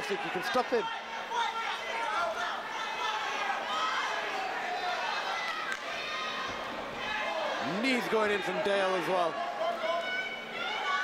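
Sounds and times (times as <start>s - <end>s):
spectators shouting and talking: 0.0s - 11.0s.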